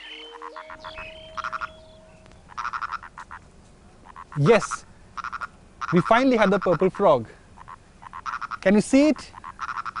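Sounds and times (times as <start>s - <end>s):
frog calling in pulsed notes: 0.0s - 3.4s, 4.0s - 7.0s, 9.3s - 10.0s.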